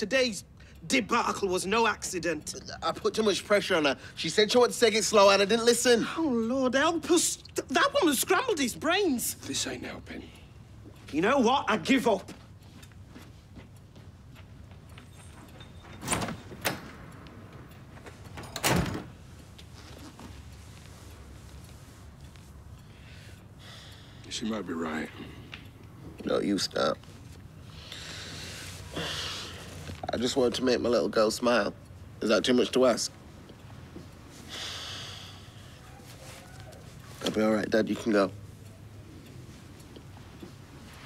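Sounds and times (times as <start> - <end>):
door closing thud: 18.4 - 19.1
man sighing: 28.9 - 29.6.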